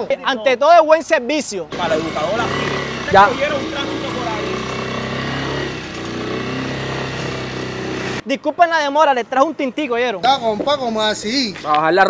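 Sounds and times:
motorcycle engine idling: 1.7s - 8.2s.

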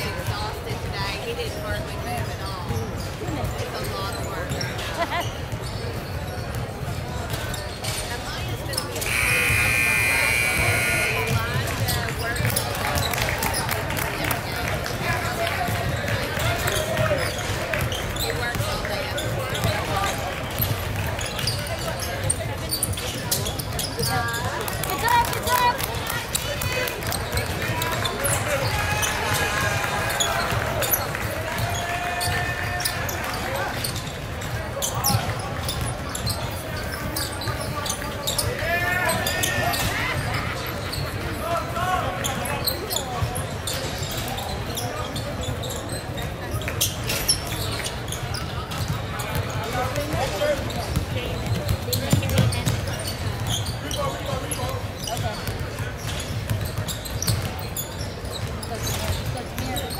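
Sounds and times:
sneakers squeaking: 0.0s - 14.0s, 14.9s - 59.9s
echoing hall noise: 8.9s - 21.7s
people calling out: 9.0s - 11.7s.

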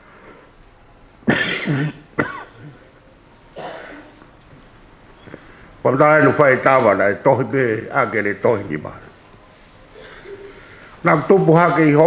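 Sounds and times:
man clearing throat and coughing: 1.2s - 2.9s, 3.5s - 4.2s.

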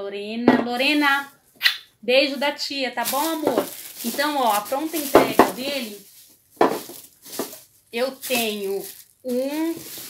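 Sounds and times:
plastic container rustling and knocking: 0.5s - 1.3s, 3.0s - 10.0s.

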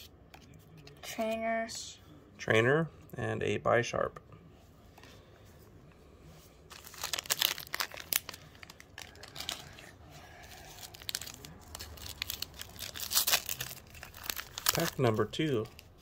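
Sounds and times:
foil wrapper crinkling and tearing: 6.7s - 9.8s, 10.6s - 15.9s.

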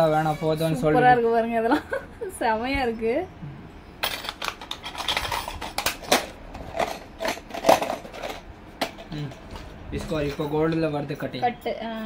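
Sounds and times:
bangles clicking and clattering: 4.0s - 9.1s.

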